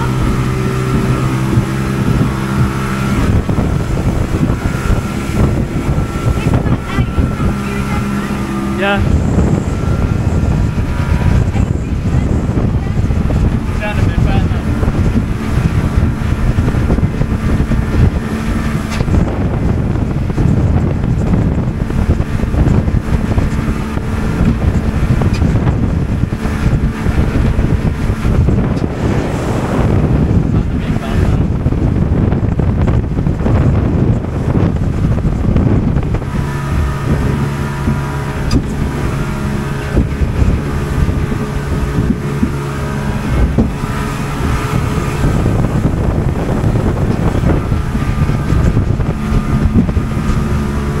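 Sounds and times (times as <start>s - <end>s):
motorboat engine running: 0.0s - 51.0s
wind buffeting microphone: 0.0s - 51.0s.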